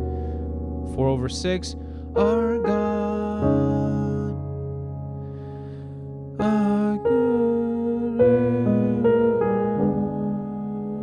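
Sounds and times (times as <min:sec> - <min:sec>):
piano playing sustained chords: 0:00.0 - 0:11.0.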